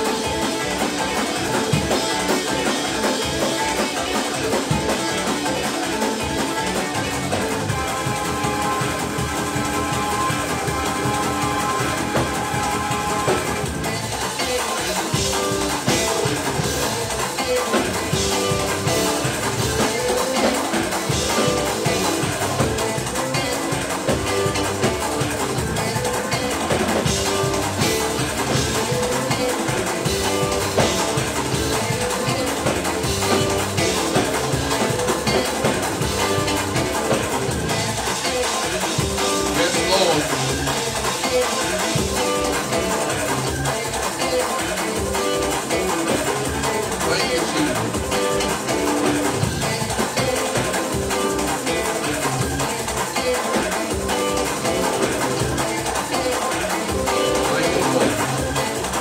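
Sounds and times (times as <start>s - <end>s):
band playing upbeat instrumental: 0.0s - 59.0s
drum kit: 0.0s - 59.0s.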